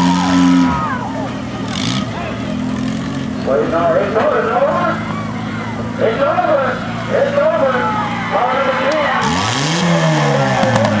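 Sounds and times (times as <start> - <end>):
engine revving: 0.0 - 5.0, 8.3 - 11.0
car engines idling: 0.0 - 11.0
people shouting: 0.1 - 1.4, 7.6 - 11.0.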